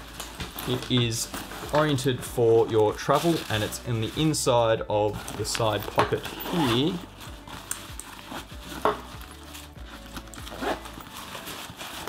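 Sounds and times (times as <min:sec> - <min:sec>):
nylon backpack fabric rustling: 0:00.0 - 0:12.0.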